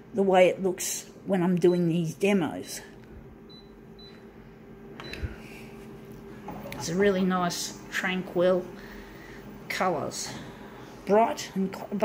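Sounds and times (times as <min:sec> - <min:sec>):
machine low hum: 0:00.0 - 0:12.0.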